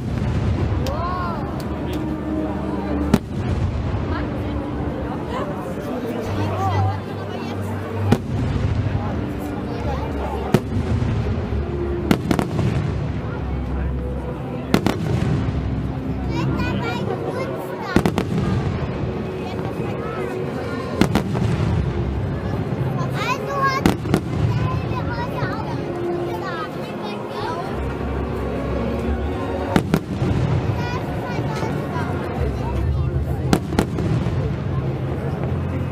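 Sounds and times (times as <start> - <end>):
fireworks bangs: 0.0 - 1.9, 3.0 - 4.4, 10.4 - 13.4, 14.7 - 15.9, 18.0 - 19.9, 21.0 - 22.3, 23.6 - 25.3, 29.7 - 31.7, 33.2 - 35.8
music playing: 0.0 - 33.6
murmur of crowd voices: 0.0 - 35.9.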